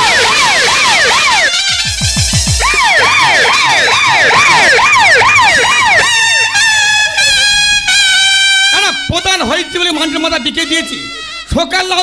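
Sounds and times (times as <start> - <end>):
siren wailing: 0.0 - 11.4.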